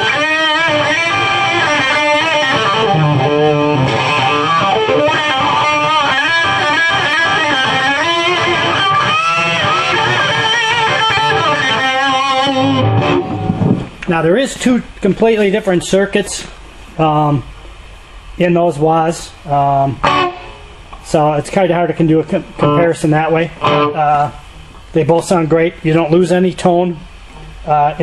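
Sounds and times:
fuzzy wah electric guitar: 0.0 - 14.0, 19.5 - 25.2.

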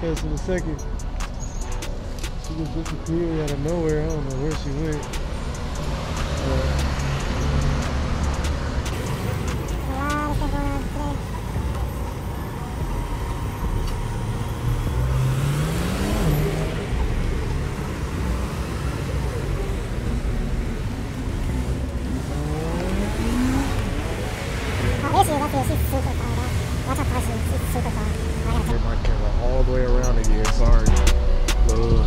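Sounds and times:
cars passing: 0.0 - 32.0
engine speeding up: 4.4 - 30.3
passers-by voices: 5.8 - 14.2, 16.2 - 31.0.

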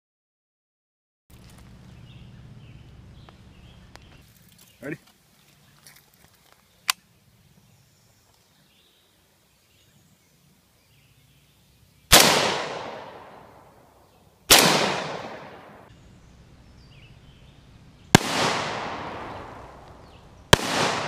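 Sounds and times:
gunshot echo: 12.1 - 13.8, 14.5 - 15.9, 18.1 - 21.0
rifle shots: 12.1 - 13.8, 14.5 - 15.9, 18.1 - 21.0.

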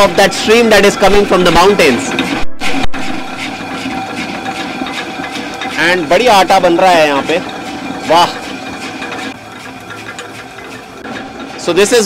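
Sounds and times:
millstone grinding rumble: 0.0 - 12.0.

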